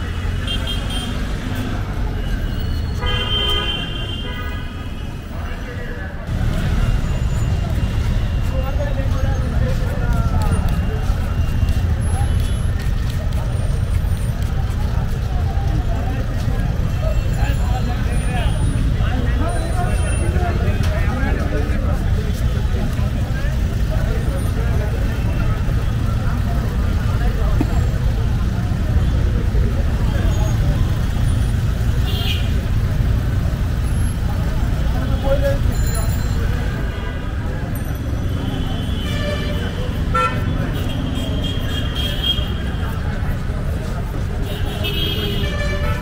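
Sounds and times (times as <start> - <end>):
road traffic rumble: 0.0 - 46.0
people talking: 5.2 - 46.0.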